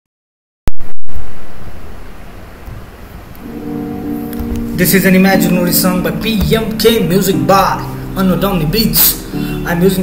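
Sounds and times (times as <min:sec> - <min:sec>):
loud rumbling noise: 0:00.8 - 0:03.4
guitar backing beat: 0:02.8 - 0:10.0.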